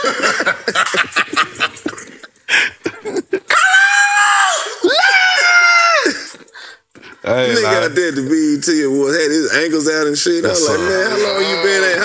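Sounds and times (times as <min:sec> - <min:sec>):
person screaming: 0:03.5 - 0:06.3.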